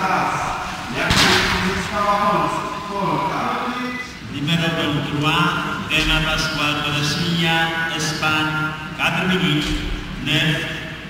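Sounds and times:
person speaking: 0.0 - 10.9
loud bang: 0.6 - 2.9.

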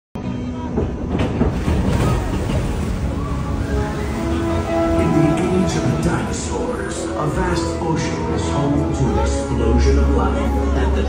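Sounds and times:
boat and water rumble: 0.4 - 11.0.

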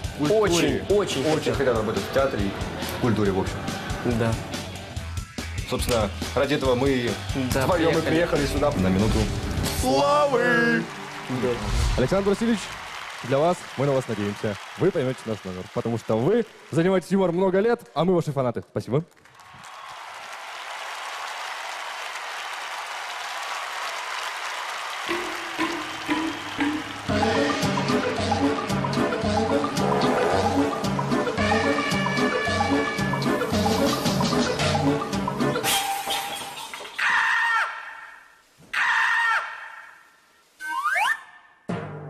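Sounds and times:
music: 0.0 - 12.4, 25.1 - 36.6, 41.7 - 42.0
studio audience applause: 9.9 - 17.7, 19.1 - 28.9.

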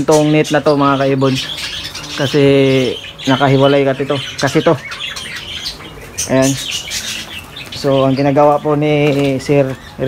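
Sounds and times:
birds chirping and squawking: 0.0 - 10.0.

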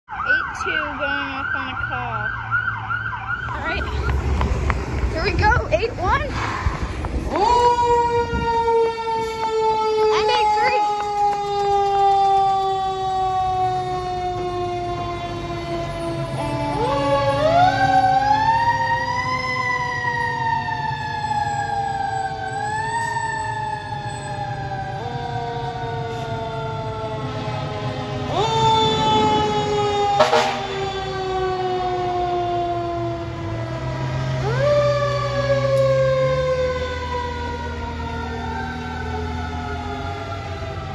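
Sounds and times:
sirens wailing: 0.0 - 40.9
truck engine rumble: 0.9 - 40.9.

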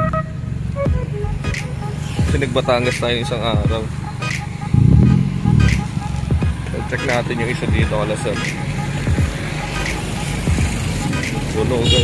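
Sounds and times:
street traffic engine hum: 0.0 - 12.0.

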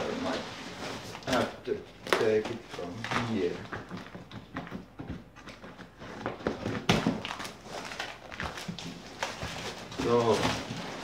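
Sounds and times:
cardboard tearing and crackling: 6.0 - 11.0.

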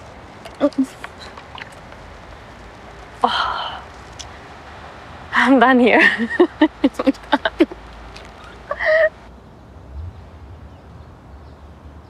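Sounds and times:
faint low outdoor rumble: 0.0 - 12.0
woman laughing: 5.4 - 7.8, 8.6 - 9.2.

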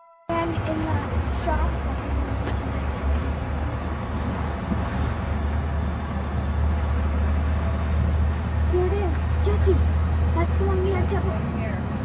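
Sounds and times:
people talking: 0.3 - 1.8, 8.7 - 11.9.

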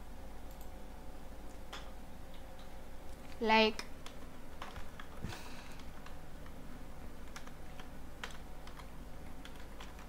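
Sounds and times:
faint low hum: 0.0 - 10.0
keyboard keystrokes: 7.2 - 10.0.

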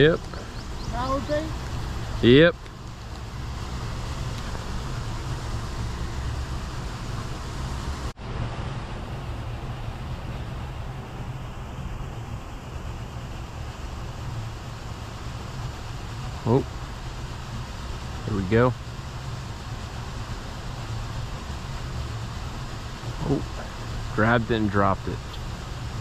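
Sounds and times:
low outdoor rumble: 0.0 - 26.0.

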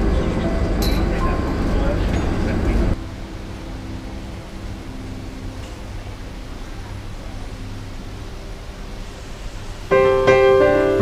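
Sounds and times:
piano background music: 0.0 - 11.0
train station platform hum: 0.0 - 11.0.

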